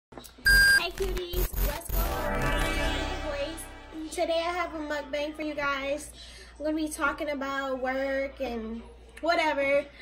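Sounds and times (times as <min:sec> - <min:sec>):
high electronic beep: 0:00.4 - 0:04.2.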